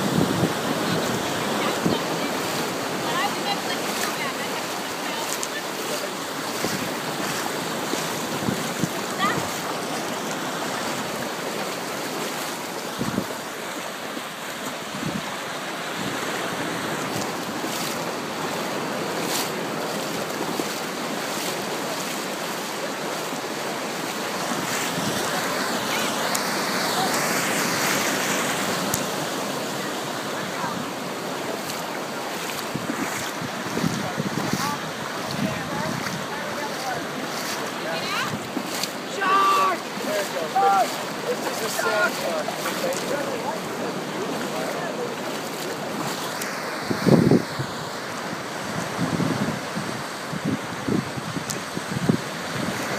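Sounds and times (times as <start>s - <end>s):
wind buffeting microphone: 0.0s - 4.3s, 6.5s - 10.2s, 12.9s - 13.6s, 14.9s - 15.3s, 32.6s - 38.8s, 46.8s - 47.9s, 48.5s - 52.9s
ocean surf washing: 0.0s - 52.9s
water sloshing around wading legs: 0.2s - 48.8s.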